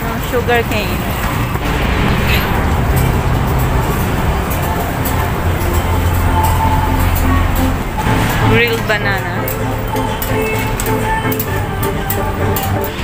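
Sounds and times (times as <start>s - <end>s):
road traffic noise: 1.5s - 11.0s
low engine hum: 1.6s - 8.6s.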